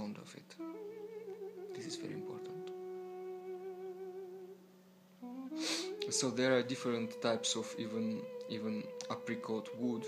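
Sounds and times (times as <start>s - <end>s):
man humming: 0.6s - 4.6s, 5.2s - 6.4s
man speaking: 1.7s - 2.7s, 6.1s - 10.0s.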